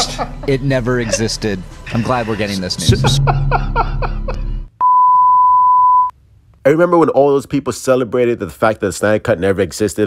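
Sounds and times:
man laughing: 0.0 - 4.6
low hum: 2.8 - 5.1.

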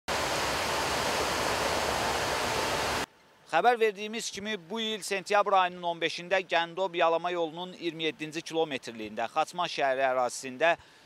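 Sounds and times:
river water pouring over a weir: 0.1 - 3.1.

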